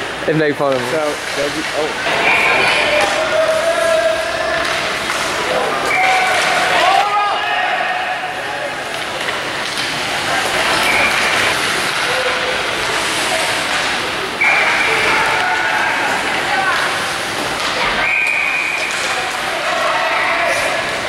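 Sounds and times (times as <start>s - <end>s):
background noise: 0.0s - 21.0s
voices calling and chattering: 0.0s - 21.0s.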